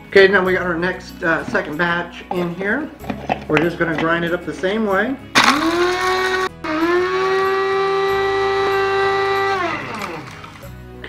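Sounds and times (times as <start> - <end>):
coffee grinder whining: 5.4 - 10.8.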